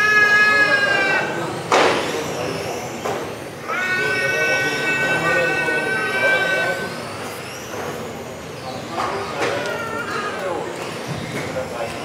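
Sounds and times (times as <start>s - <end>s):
rc car motor whine: 0.0s - 12.0s
rc cars racing on track: 0.0s - 12.0s.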